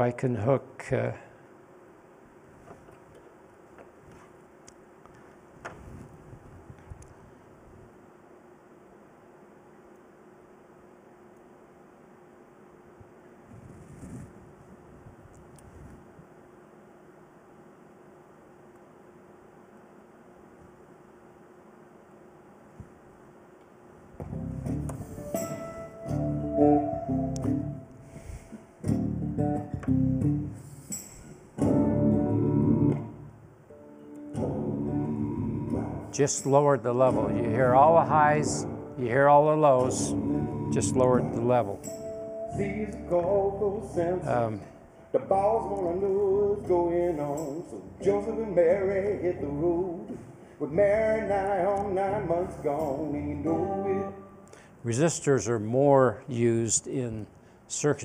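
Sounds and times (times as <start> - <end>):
music over a loudspeaker: 37.0 - 39.1.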